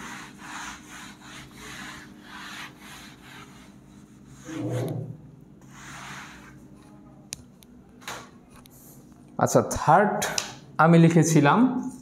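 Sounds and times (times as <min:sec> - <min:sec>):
eraser rubbing on whiteboard: 0:00.0 - 0:06.8.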